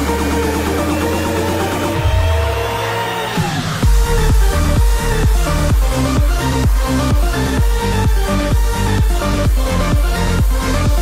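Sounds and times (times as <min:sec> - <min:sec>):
deep bass: 0:00.0 - 0:11.0
heavy kick drum: 0:03.8 - 0:11.0.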